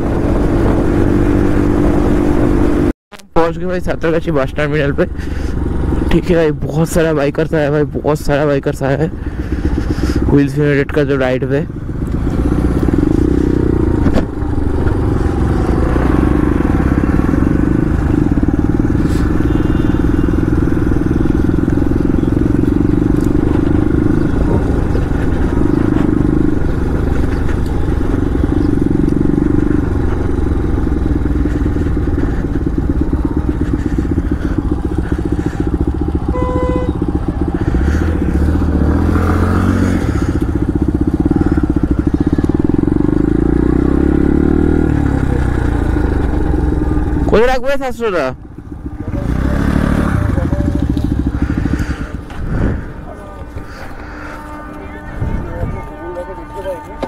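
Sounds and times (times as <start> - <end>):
motorcycle engine running: 0.0 - 57.0
short high beep: 36.3 - 37.0.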